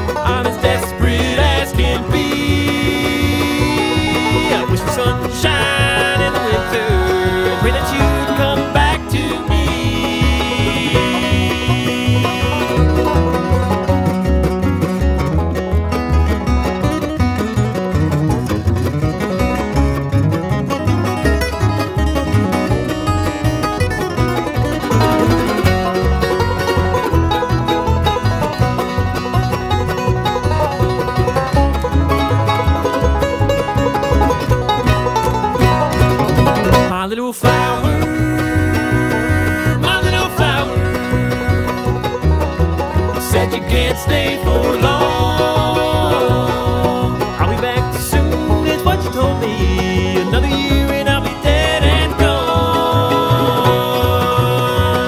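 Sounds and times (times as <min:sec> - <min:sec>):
banjo: 0:00.0 - 0:55.0
bass pulse: 0:00.0 - 0:55.0
guitar: 0:00.0 - 0:55.0.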